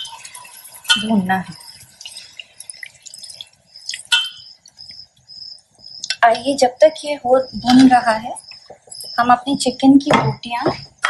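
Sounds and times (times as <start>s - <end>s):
metal ladle stirring frying meat: 0.0s - 4.7s
faint sizzle: 0.0s - 9.4s.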